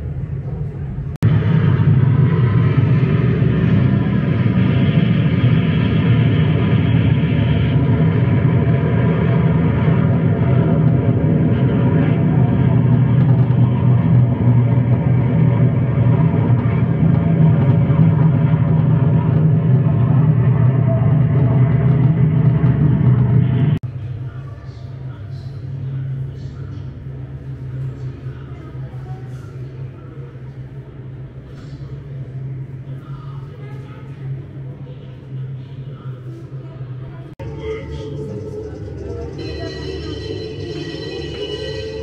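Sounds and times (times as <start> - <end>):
low mechanical drone: 0.0 - 42.0.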